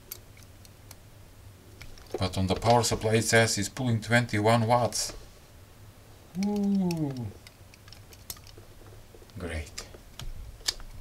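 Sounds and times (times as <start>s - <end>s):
man saying ooh: 6.3s - 7.4s
plastic modules clicking: 6.4s - 8.7s.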